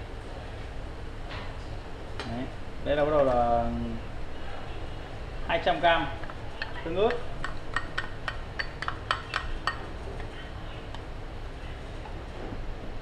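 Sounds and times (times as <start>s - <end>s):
spatula clinking metal bowl: 6.2s - 10.4s.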